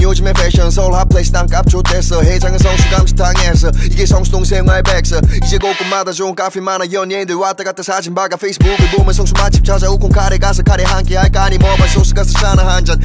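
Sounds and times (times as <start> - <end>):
deep bass kicks: 0.0 - 5.6, 8.6 - 13.0
rapping over a beat: 0.0 - 13.0.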